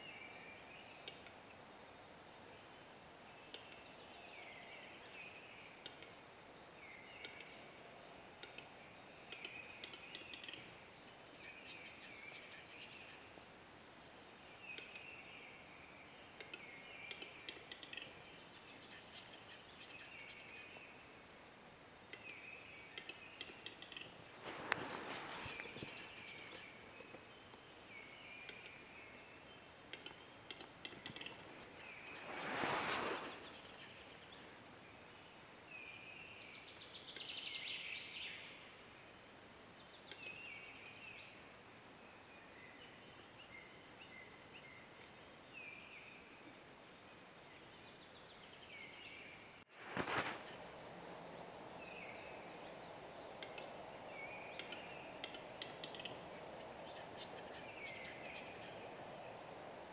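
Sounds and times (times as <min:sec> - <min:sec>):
small birds chirping: 0:02.7 - 0:07.7, 0:08.4 - 0:13.6, 0:14.4 - 0:21.3, 0:22.0 - 0:38.6, 0:47.5 - 0:59.9.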